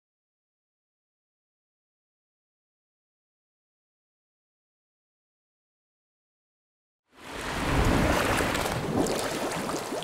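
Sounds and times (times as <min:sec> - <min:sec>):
rushing crackling water: 0:07.2 - 0:10.0.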